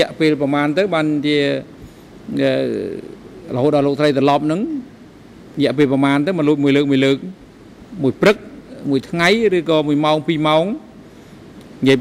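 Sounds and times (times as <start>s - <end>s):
man speaking into a microphone: 0.0s - 1.7s, 2.3s - 4.9s, 5.6s - 10.9s, 11.8s - 12.0s.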